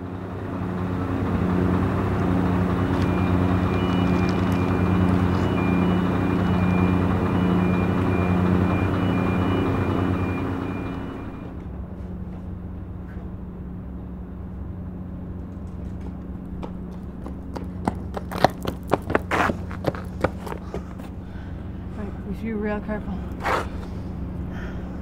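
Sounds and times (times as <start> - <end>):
diesel engine running: 0.0 - 25.0
electronic warning beeps: 3.0 - 11.5.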